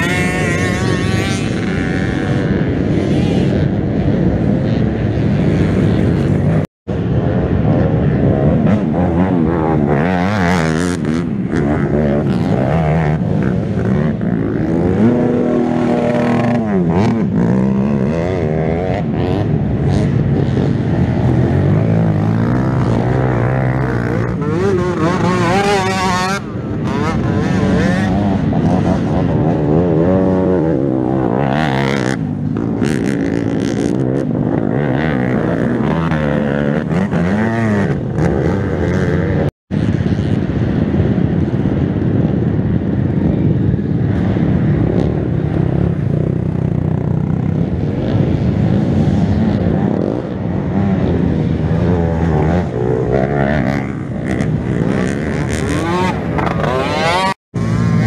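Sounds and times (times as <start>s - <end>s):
quad engines revving: 7.4s - 40.0s, 46.8s - 58.0s.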